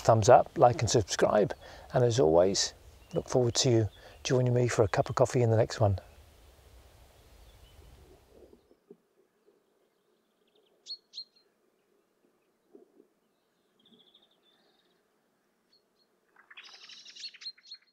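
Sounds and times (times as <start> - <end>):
open field ambience: 0.0 - 17.9
small birds chirping: 0.0 - 17.9
bird trill: 10.4 - 11.5, 15.7 - 17.9.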